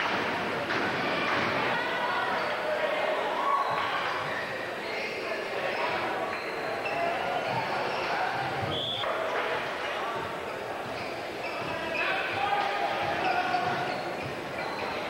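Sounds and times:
crowd and player chatter: 0.0s - 15.0s.

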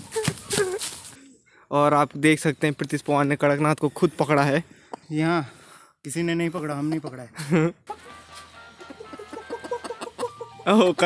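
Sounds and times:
background music: 7.7s - 11.0s
rooster clucking: 8.8s - 10.6s.

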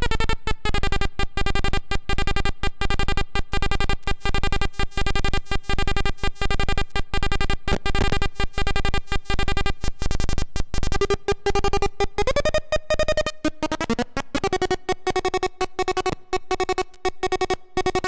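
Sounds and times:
stuttering square-wave synth buzz: 0.0s - 18.0s.

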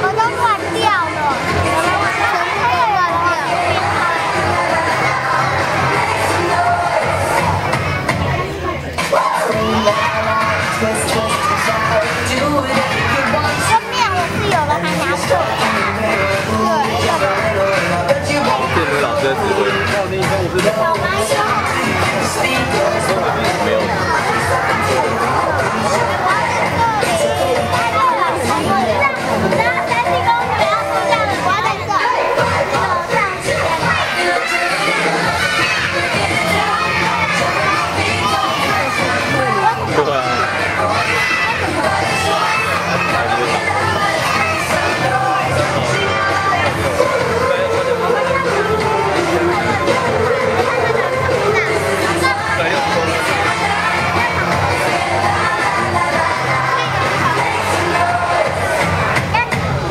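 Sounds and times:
children shouting and cheering: 0.0s - 59.9s
dance music: 0.0s - 59.9s.

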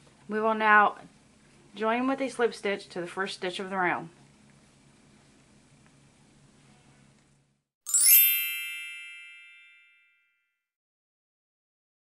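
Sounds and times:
bright ringing chime: 7.9s - 10.4s.

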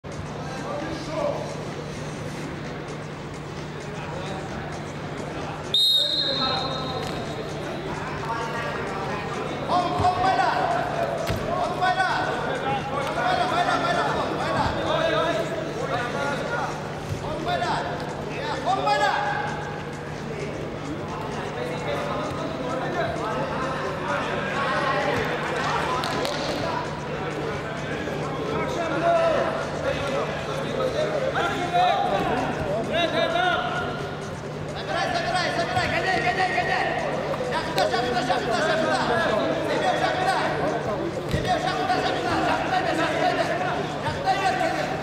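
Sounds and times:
voices calling out in echoing hall: 0.0s - 45.0s
referee's whistle blast: 5.7s - 7.3s.

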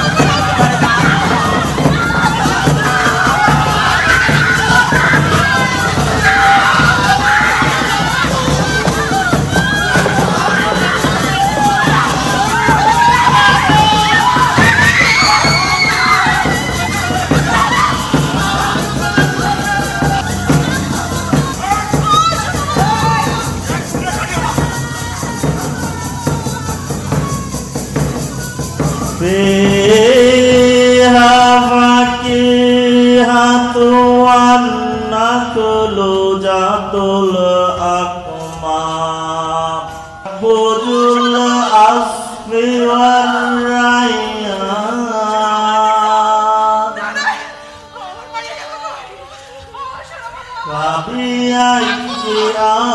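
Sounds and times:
barrel drum beaten by hand: 0.0s - 31.6s
women wailing and crying out: 0.0s - 32.0s, 46.7s - 52.9s.

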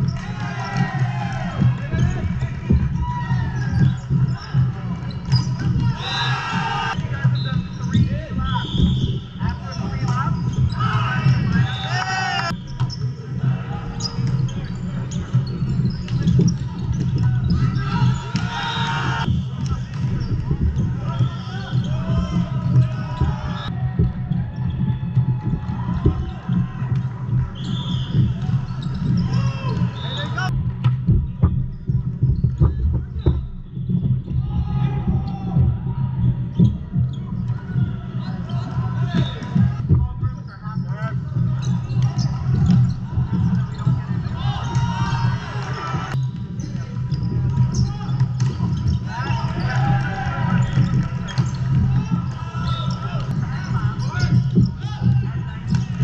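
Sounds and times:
players calling out: 0.0s - 30.6s
volleyballs hit and bouncing: 0.0s - 40.1s, 40.8s - 56.0s.

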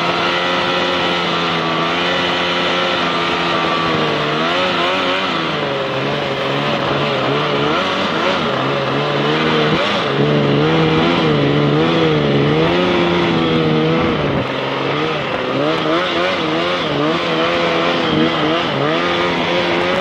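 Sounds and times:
outboard motor running: 0.0s - 20.0s.

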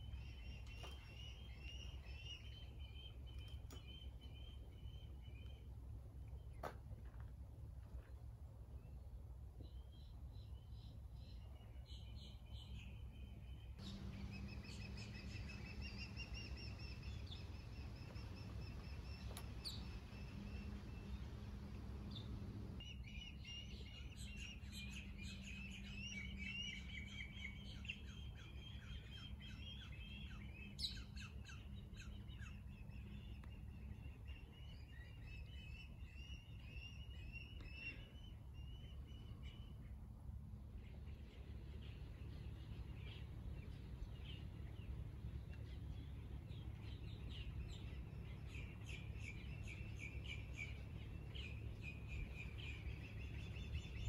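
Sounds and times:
low steady hum: 0.0s - 54.0s
birds chirping rapidly: 13.8s - 23.6s.

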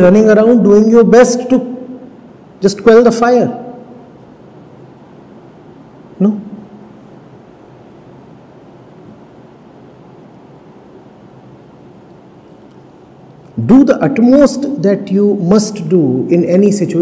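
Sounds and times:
faint room hiss: 0.0s - 17.0s.

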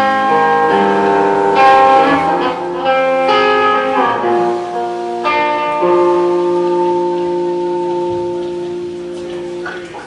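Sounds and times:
electric guitar chord ringing: 0.0s - 10.0s.

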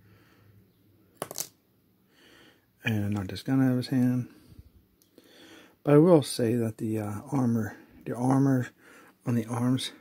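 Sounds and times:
plastic toy falling onto table: 1.2s - 1.6s.

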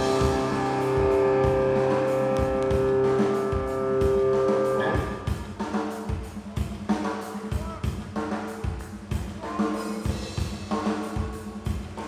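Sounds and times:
electric guitars ringing chord: 0.0s - 5.5s
drum kit: 0.0s - 12.0s.

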